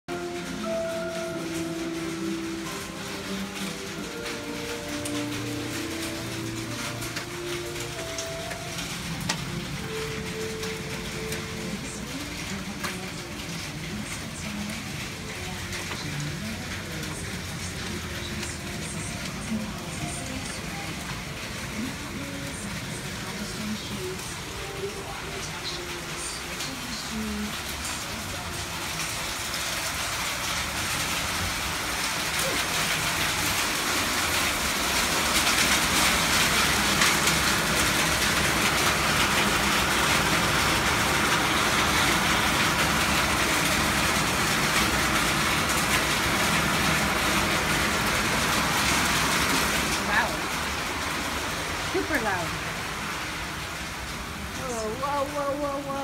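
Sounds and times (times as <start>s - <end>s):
heavy rain falling: 0.1s - 56.0s.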